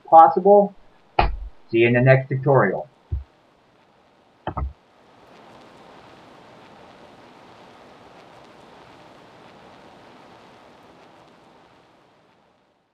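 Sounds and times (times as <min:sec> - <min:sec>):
steady hiss: 0:00.0 - 0:12.9.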